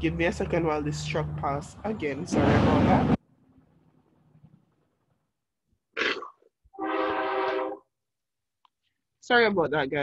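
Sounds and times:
truck horn blare: 6.7s - 7.9s.

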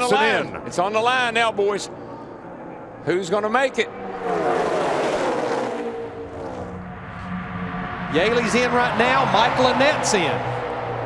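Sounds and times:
race cars passing at speed: 2.9s - 11.0s.

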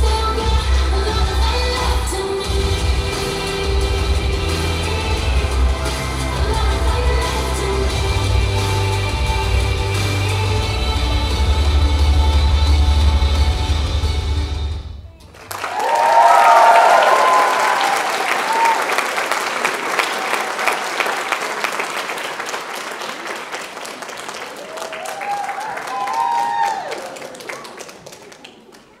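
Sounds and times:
audience applauding: 15.3s - 29.0s
whoops: 15.6s - 19.1s, 24.6s - 27.8s.

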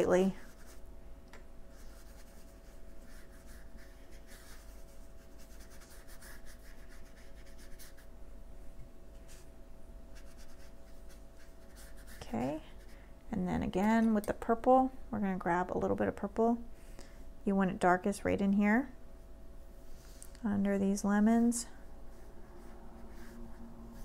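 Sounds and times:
brush stroking on paper: 0.0s - 0.8s, 1.7s - 8.1s, 10.1s - 13.0s, 22.1s - 24.0s
faint steady hum: 0.0s - 24.0s.

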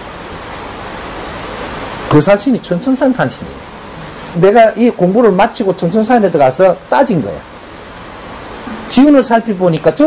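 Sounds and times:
running water rushing: 0.0s - 10.0s.

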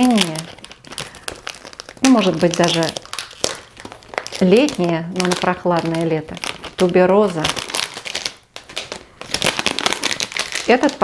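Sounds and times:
cellophane wrap crinkling: 0.0s - 11.0s.

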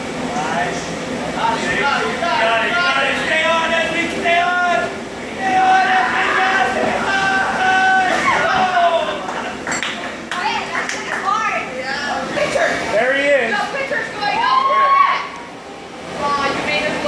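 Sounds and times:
people calling out and talking: 1.3s - 9.6s.

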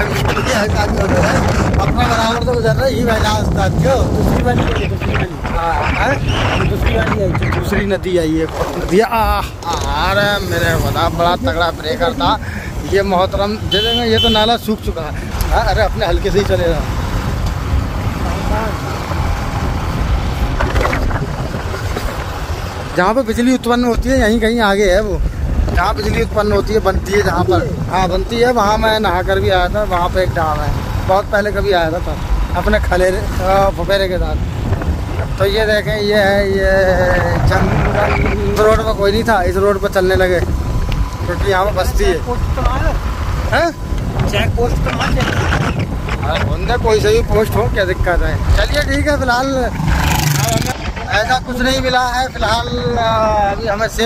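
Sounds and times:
man asking a question: 0.0s - 17.0s
motorcycle rumble: 0.0s - 23.1s, 23.9s - 54.0s
road noise: 0.0s - 54.0s
wind buffeting microphone: 0.0s - 54.0s.

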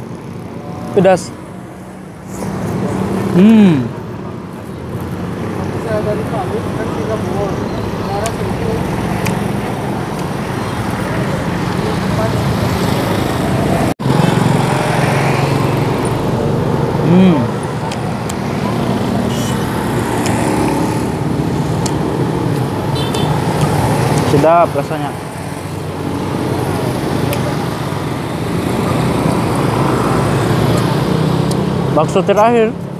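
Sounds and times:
road traffic: 0.0s - 32.9s
person humming approval: 3.4s - 4.0s, 17.0s - 17.5s.

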